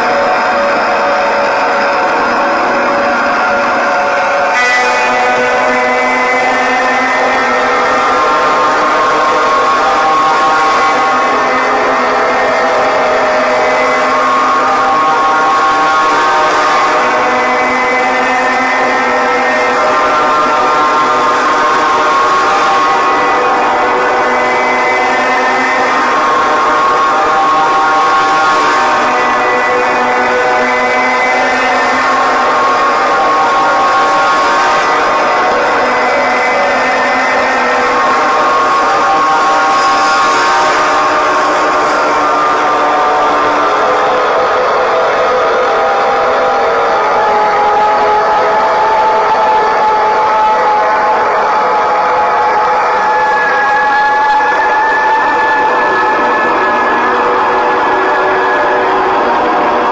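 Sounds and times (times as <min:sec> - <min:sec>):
ambient drone soundtrack: 0:00.0 - 0:59.9.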